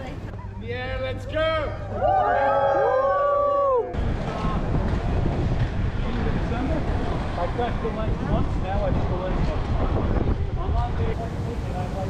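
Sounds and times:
people whooping and cheering: 1.7s - 4.0s
wind on microphone: 3.9s - 12.0s.

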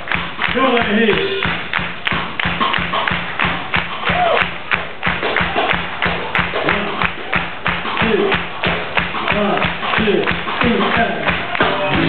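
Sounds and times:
ska band playing live: 0.0s - 12.0s
person singing: 9.3s - 12.0s.

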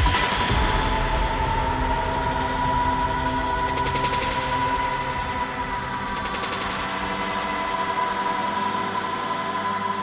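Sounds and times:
steady droning tone: 0.0s - 10.0s.

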